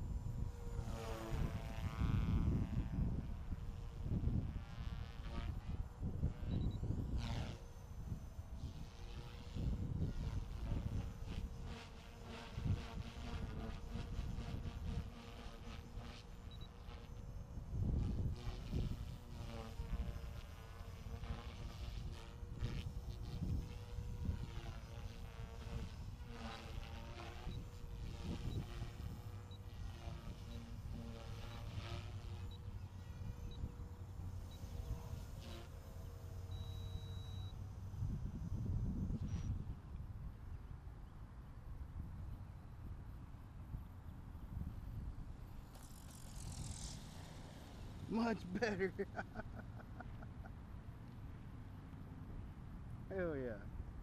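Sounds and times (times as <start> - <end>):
rc helicopter rotor humming: 0.0 - 54.0
helicopter rotor blades swishing: 45.4 - 50.5.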